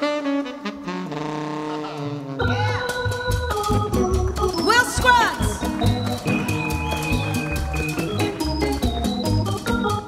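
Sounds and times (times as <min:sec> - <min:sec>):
saxophone: 0:00.0 - 0:03.0, 0:05.4 - 0:09.6
latin band playing: 0:00.0 - 0:10.0
congas and timbales: 0:01.8 - 0:10.0.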